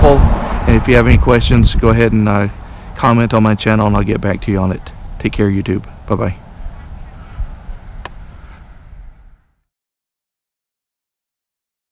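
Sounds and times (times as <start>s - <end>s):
low outdoor rumble: 0.0s - 9.6s.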